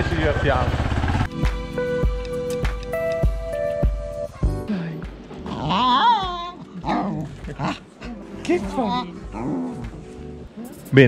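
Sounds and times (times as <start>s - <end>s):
dog growling and yelping: 5.3s - 10.7s.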